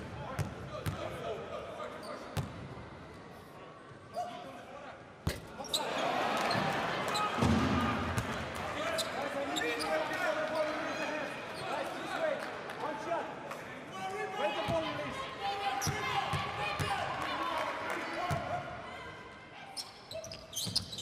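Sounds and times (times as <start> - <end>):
crowd shouting and cheering: 5.6 - 19.6.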